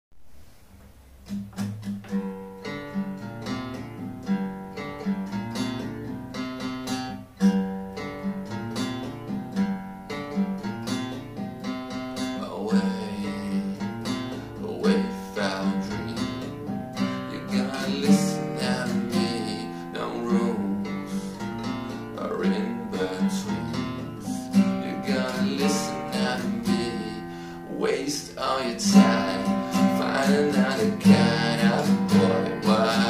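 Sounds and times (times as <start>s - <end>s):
acoustic guitar strumming: 0.3s - 33.0s.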